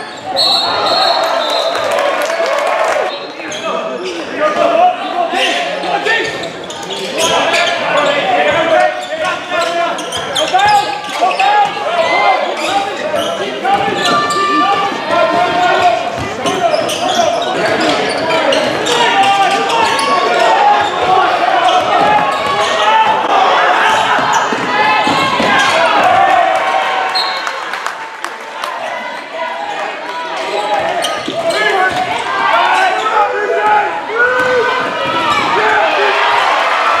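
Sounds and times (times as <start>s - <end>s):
sneakers squeaking: 0.0s - 1.9s, 3.1s - 26.1s, 27.0s - 27.6s, 30.1s - 33.4s, 34.3s - 35.7s.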